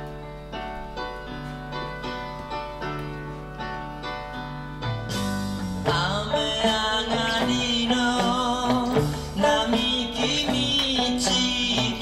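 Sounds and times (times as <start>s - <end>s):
rock band recording: 4.1s - 12.0s
electric guitar strummed: 4.8s - 12.0s.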